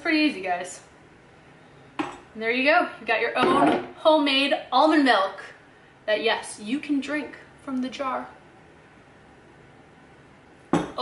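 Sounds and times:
glass jar set down: 0:10.7 - 0:11.0.

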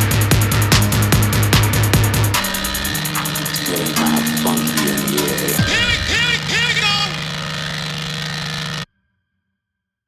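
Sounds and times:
pitch-bending synth sounds: 0:02.4 - 0:08.8
sustained low synth tone: 0:02.4 - 0:08.8.

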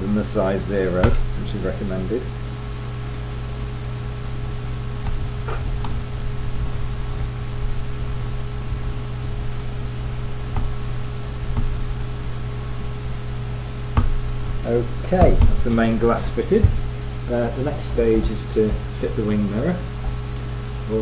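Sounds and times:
background hum and hiss: 0:00.0 - 0:21.0.

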